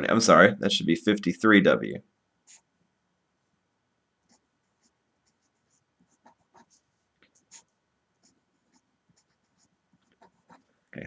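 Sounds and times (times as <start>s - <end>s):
marker writing on paper: 4.3s - 10.7s.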